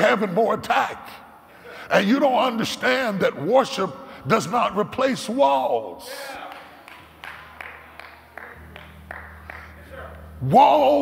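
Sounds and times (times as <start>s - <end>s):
sharp claps: 6.4s - 10.3s.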